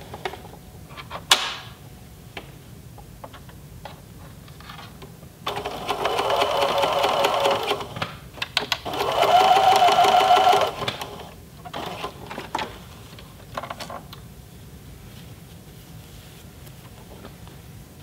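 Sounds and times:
electric sewing machine stitching: 5.5s - 8.0s, 8.8s - 12.4s.

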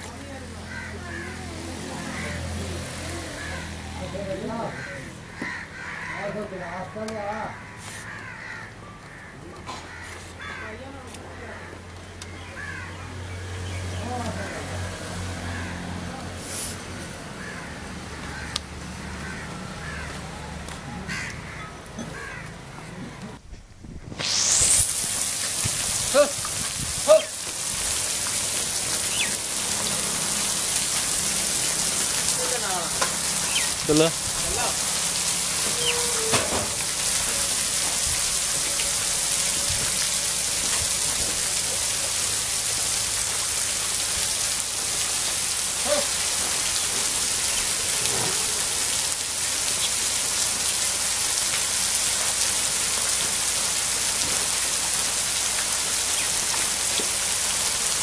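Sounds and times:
sprinkler spraying water: 0.0s - 3.9s, 24.0s - 58.0s
faint voices: 0.0s - 5.6s.

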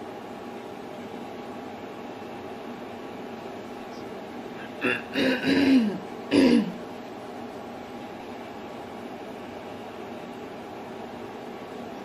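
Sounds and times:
faint hum: 0.0s - 12.0s
room hiss: 0.0s - 12.0s.

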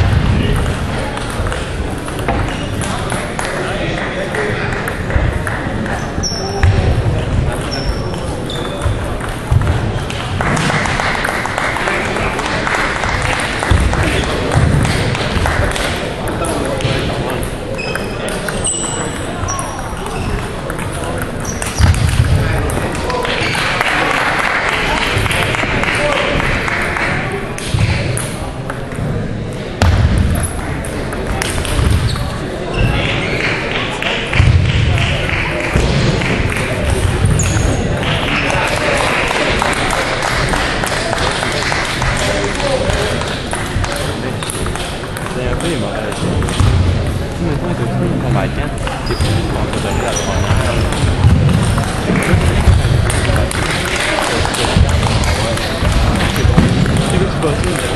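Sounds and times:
murmur of voices in hall: 0.0s - 57.9s
table tennis balls clicking: 0.2s - 6.7s, 7.5s - 24.1s, 30.2s - 32.3s, 34.3s - 47.2s, 48.2s - 57.9s.

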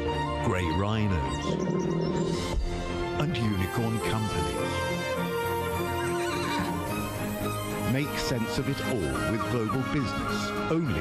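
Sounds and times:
background music: 0.0s - 11.0s
horse whinny: 5.6s - 7.6s.

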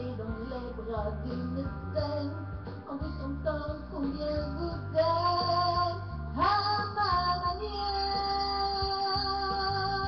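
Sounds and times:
recorded backing track: 0.0s - 10.0s
woman singing into microphone: 0.0s - 10.0s.

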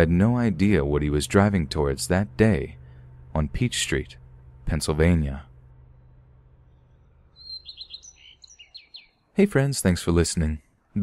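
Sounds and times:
faint low hum: 0.0s - 11.0s
bird chirping: 6.6s - 9.5s.

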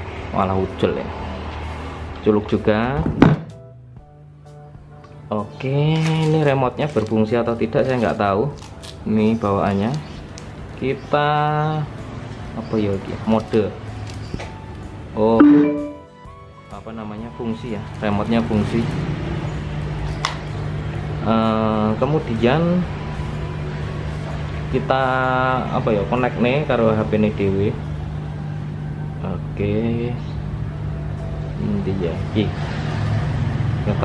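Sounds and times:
short sharp sound: 15.4s - 16.1s.

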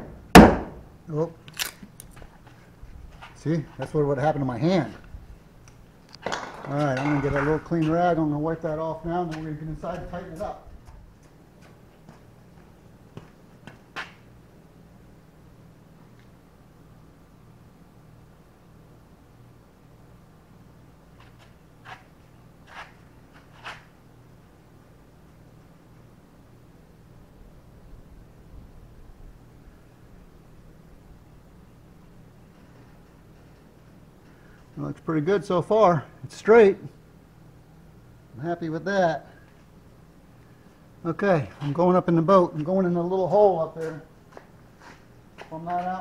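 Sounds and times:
steady low hum: 0.0s - 46.0s.

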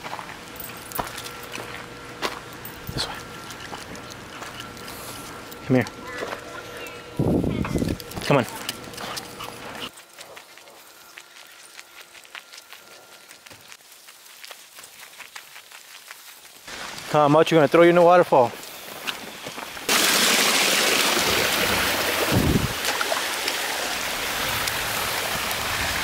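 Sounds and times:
footsteps on gravel: 0.0s - 20.0s.

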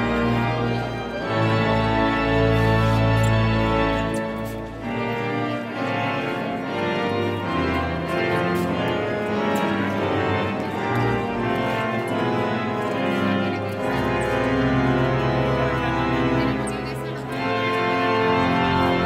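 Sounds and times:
pipe organ playing: 0.0s - 19.0s.

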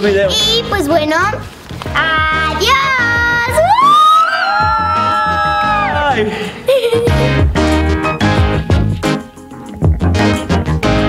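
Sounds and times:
background music with steady beat: 0.6s - 11.0s
voices shouting a high cheer: 2.8s - 6.2s.

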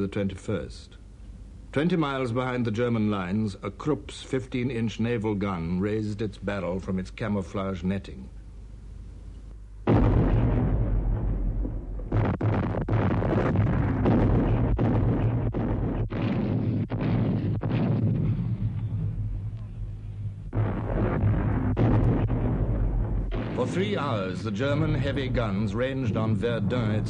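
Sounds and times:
faint low hum: 0.0s - 27.0s
artillery gunfire rumble and blasts: 9.9s - 27.0s.

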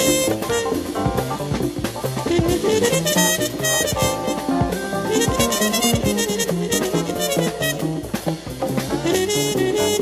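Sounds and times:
bass line: 0.0s - 10.0s
brass playing: 0.0s - 10.0s
drum kit with cymbals: 0.0s - 10.0s.

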